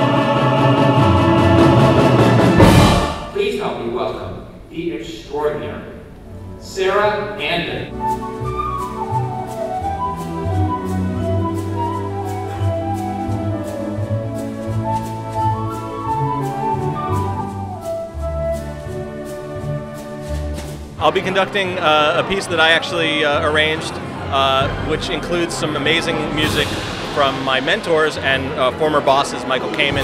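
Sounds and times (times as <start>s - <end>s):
orchestra and choir chord: 0.0s - 3.5s
heavy orchestral percussion hit: 0.0s - 7.0s, 10.9s - 30.0s
sustained low strings: 0.0s - 30.0s
man speaking: 3.3s - 6.0s, 6.6s - 7.9s, 21.0s - 30.0s
flute solo melody: 7.9s - 20.7s.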